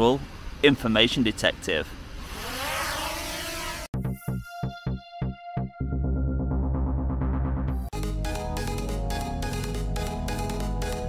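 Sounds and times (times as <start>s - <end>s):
drone propellers whirring: 2.2s - 4.0s.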